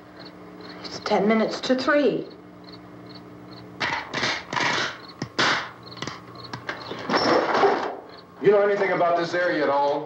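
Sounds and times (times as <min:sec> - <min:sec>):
low steady hum: 0:00.0 - 0:10.0
sharp knocks: 0:03.8 - 0:08.0.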